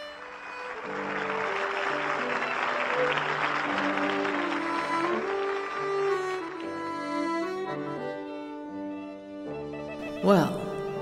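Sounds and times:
audience applauding: 0.0s - 7.7s
tango music: 0.0s - 11.0s.

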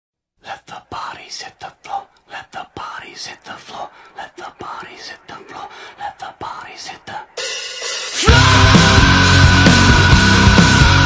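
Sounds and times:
indistinct voice talking: 0.5s - 7.4s.

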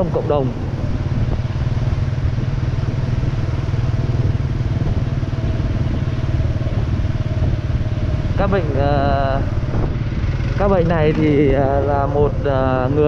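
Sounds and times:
motorbike engine and road noise: 0.0s - 13.0s
wind rumble on microphone: 0.0s - 13.0s.

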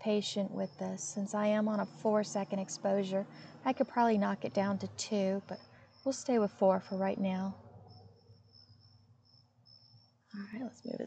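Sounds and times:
cricket trilling: 0.1s - 11.0s.

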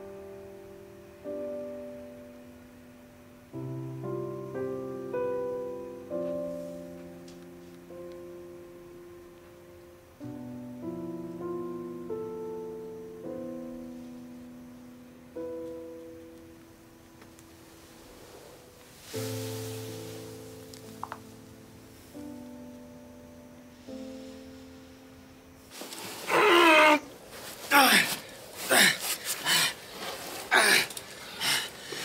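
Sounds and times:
soft piano chords: 0.0s - 26.3s
men panting and groaning: 27.6s - 32.0s.

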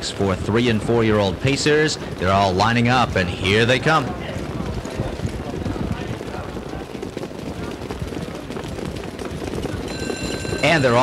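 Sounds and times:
horse hoofbeats: 0.0s - 11.0s
murmur of crowd voices: 0.0s - 11.0s.

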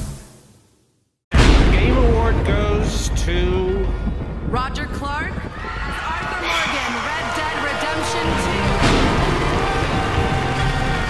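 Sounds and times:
person speaking: 6.4s - 8.8s.

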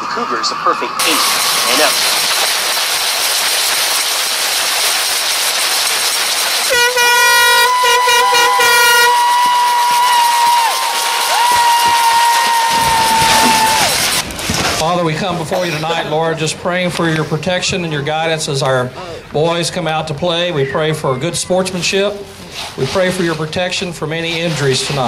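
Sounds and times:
air horn blasts: 6.7s - 9.9s
crowd cheering: 6.7s - 14.2s.

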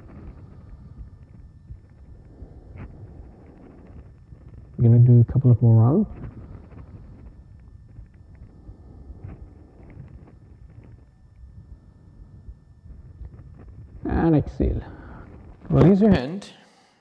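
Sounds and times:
background hiss: 0.0s - 17.0s.

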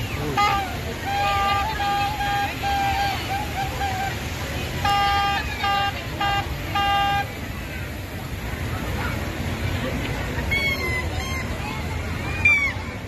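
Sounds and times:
horn tooting: 0.0s - 4.2s, 4.8s - 7.4s
outdoor crowd noise: 0.0s - 13.0s.

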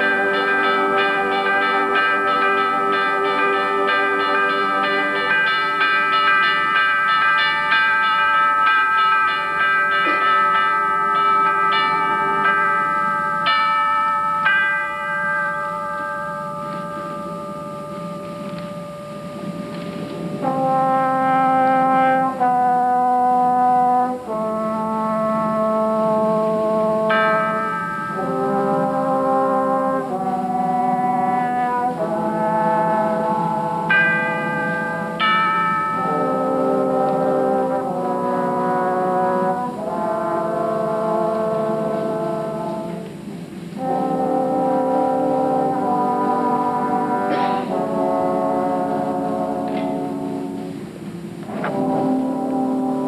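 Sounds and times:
concert band playing: 0.0s - 53.0s.

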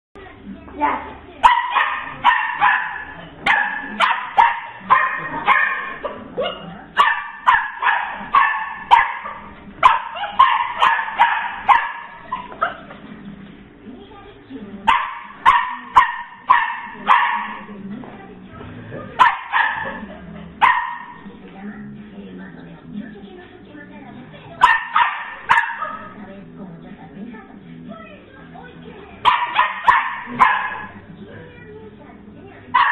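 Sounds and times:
puppy barking: 1.4s - 13.0s, 14.9s - 17.8s, 19.0s - 21.3s, 24.6s - 26.2s, 29.2s - 31.0s.

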